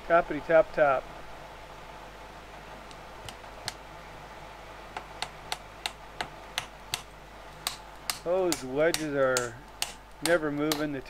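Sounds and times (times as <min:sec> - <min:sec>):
hammer tapping wooden wedges: 0:05.0 - 0:11.0.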